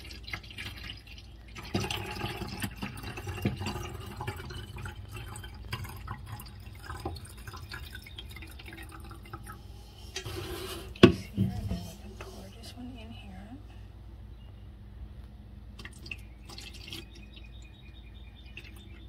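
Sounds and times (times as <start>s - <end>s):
water trickling into bottle: 0.0s - 11.1s, 15.8s - 19.0s.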